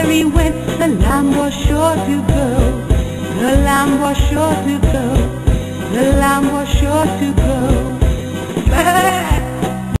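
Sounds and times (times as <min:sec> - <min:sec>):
instrumental children's music: 0:00.0 - 0:10.0
lamb bleating: 0:08.7 - 0:09.5.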